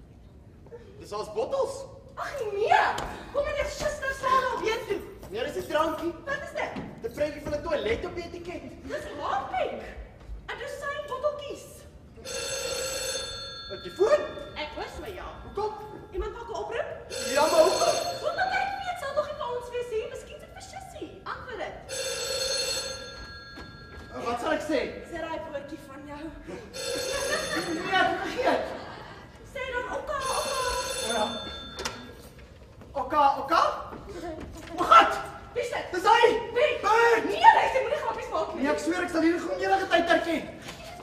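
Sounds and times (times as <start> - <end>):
telephone bell ringing: 12.2 - 16.1, 17.1 - 18.8, 21.8 - 24.6, 26.7 - 28.4, 30.2 - 32.3
voices talking: 13.4 - 23.0.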